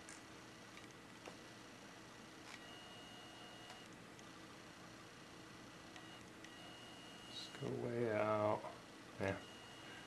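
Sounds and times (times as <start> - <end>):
zoom motor high whine: 2.4 - 3.9, 5.6 - 7.8, 9.4 - 10.0.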